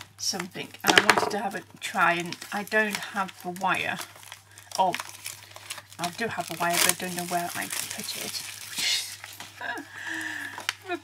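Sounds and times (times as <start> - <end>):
cardboard and plastic rustling: 2.2 - 9.8.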